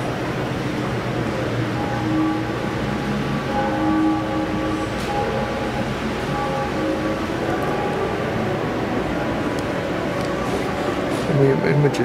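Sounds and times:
slow ambient music: 0.0 - 12.0.

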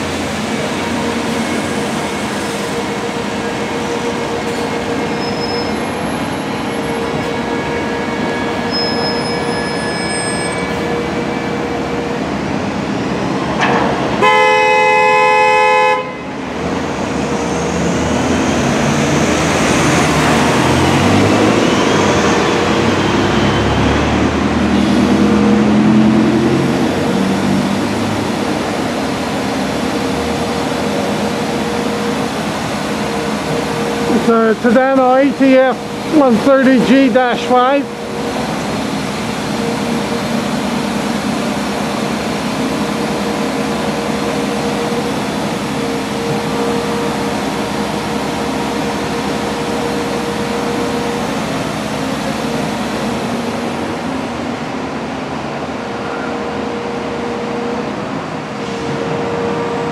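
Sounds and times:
bus driving past: 0.0 - 59.9
street traffic: 0.0 - 59.9
vehicle horn: 14.2 - 16.3.

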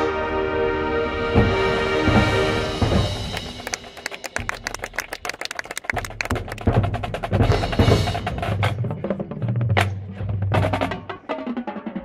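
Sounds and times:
marching band held chord: 0.0 - 4.5.

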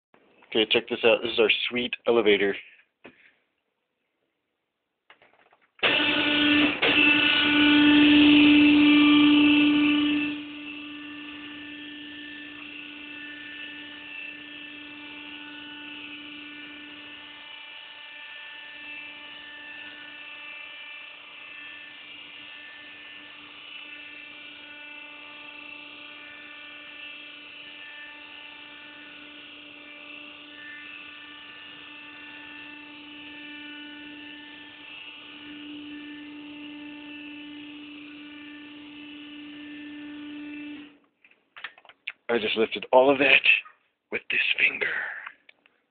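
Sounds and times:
elevator motor whine: 5.8 - 41.0.

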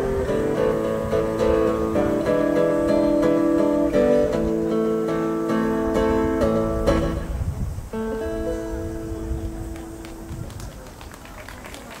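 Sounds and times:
acoustic guitar chord ringing: 0.0 - 9.8
audience clapping: 9.7 - 12.0.

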